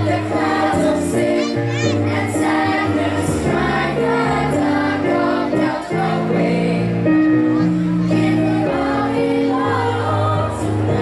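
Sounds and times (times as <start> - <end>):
choir singing a carol: 0.0 - 11.0
low musical accompaniment: 0.0 - 11.0.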